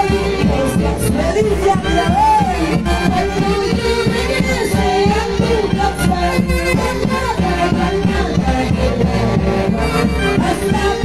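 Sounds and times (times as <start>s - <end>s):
saxophone band playing dance tune: 0.0s - 11.0s.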